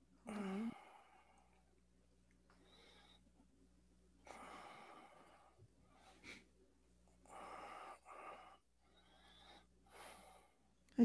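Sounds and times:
faint breathing of a person: 0:00.0 - 0:01.8, 0:02.5 - 0:11.0.

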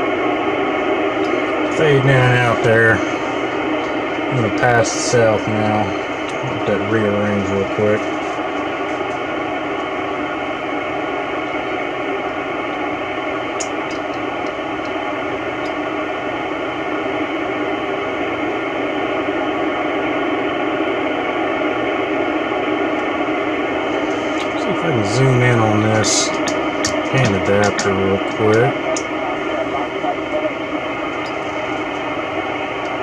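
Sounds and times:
radio receiver hiss: 0:00.0 - 0:33.0.

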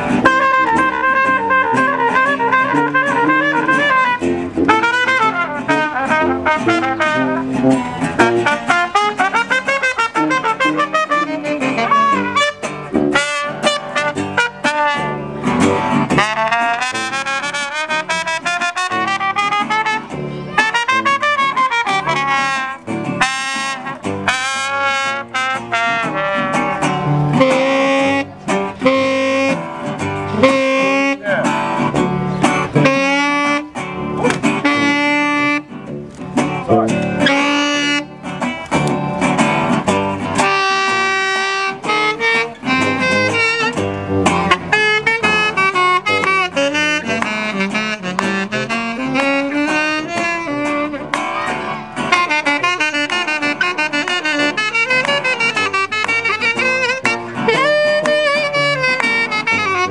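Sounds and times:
saxophone solo: 0:00.0 - 0:36.0, 0:36.7 - 0:38.3, 0:39.9 - 0:59.9
strummed acoustic guitar: 0:00.0 - 0:59.9
tuba bass line: 0:00.0 - 0:59.9.

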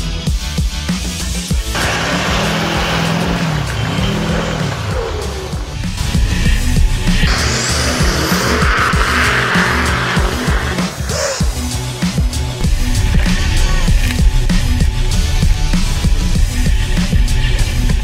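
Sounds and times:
music: 0:00.0 - 0:18.0
truck engine revving: 0:01.0 - 0:18.0
tires spinning in snow: 0:01.6 - 0:14.7.

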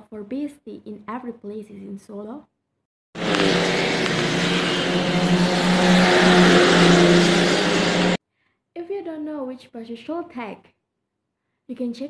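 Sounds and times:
car passing close by: 0:03.2 - 0:08.2.

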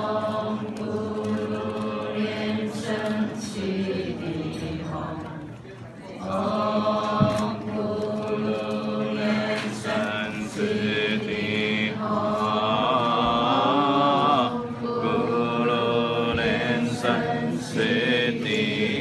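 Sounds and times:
group chanting: 0:00.0 - 0:05.4, 0:06.2 - 0:19.0.

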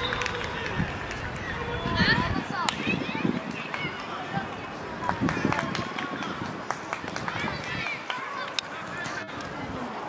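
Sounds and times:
children calling and shouting: 0:00.0 - 0:10.0.

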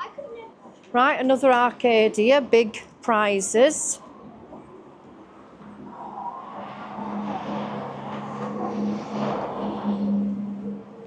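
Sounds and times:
vehicle passing by: 0:05.6 - 0:11.0.

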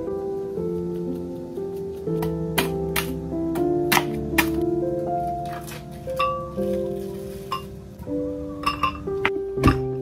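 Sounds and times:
background music: 0:00.0 - 0:10.0
glass blender jar clinks: 0:08.6 - 0:09.1.

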